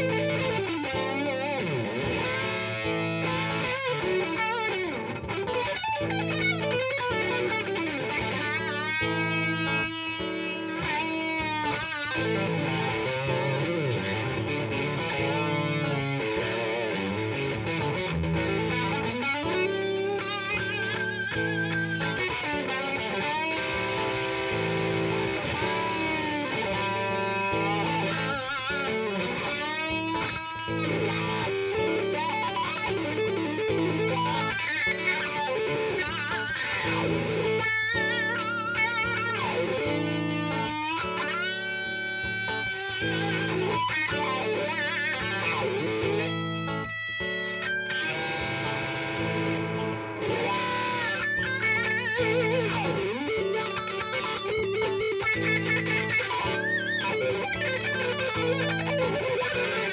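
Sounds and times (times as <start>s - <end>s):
fuzz electric guitar blues lead: 0.0s - 59.9s.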